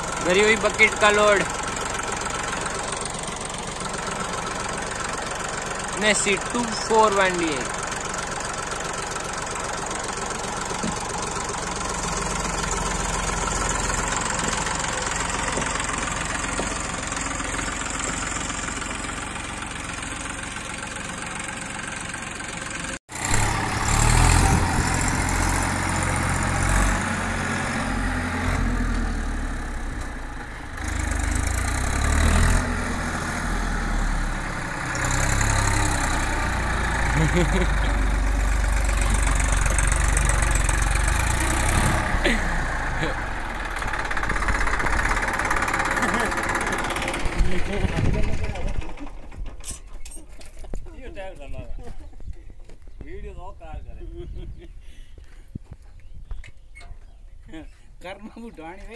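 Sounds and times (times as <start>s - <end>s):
tractor diesel engine running: 0.0s - 56.0s
wheel spinning in loose soil: 43.1s - 50.8s.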